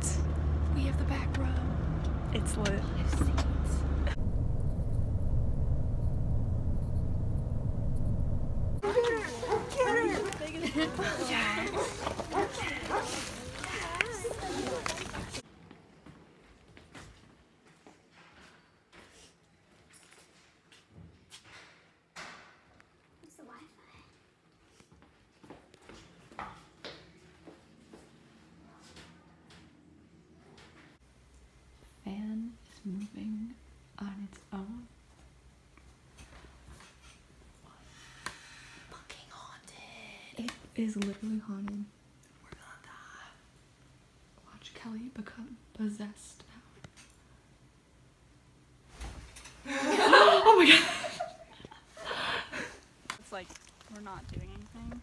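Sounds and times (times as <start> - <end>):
low steady hum: 0.0 - 12.8
dog vocalizing: 8.8 - 10.3
people's excited voices: 8.8 - 15.4
faint whispering: 38.8 - 40.4, 42.4 - 43.5.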